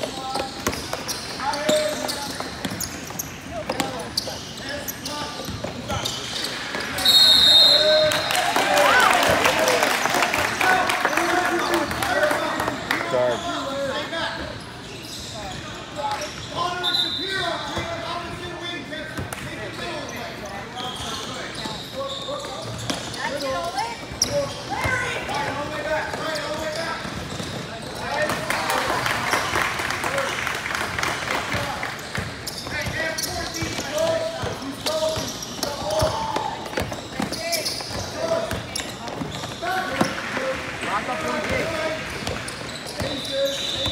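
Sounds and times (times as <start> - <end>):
basketball bouncing on indoor court: 0.0 - 4.5, 20.8 - 28.5, 31.0 - 40.4, 41.3 - 43.9
voices echoing in a hall: 0.0 - 43.9.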